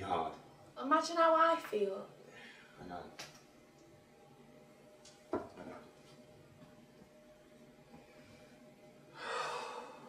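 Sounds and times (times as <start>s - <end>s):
person sighing: 9.2s - 10.0s.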